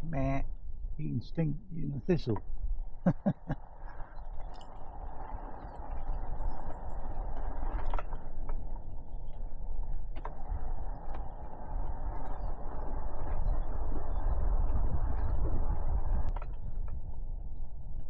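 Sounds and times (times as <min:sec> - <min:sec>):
wind noise on microphone: 0:00.0 - 0:18.0
electric mountain bike running: 0:02.4 - 0:18.0.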